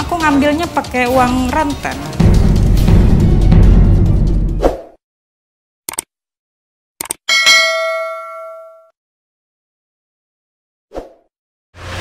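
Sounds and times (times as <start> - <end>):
theme music: 0.0 - 4.7
bell ding: 7.3 - 8.9.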